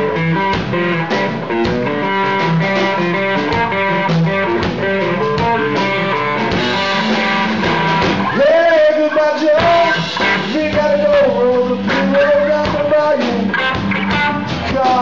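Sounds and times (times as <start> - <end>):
drums: 0.0 - 15.0
electric guitar through amplifier: 0.0 - 15.0.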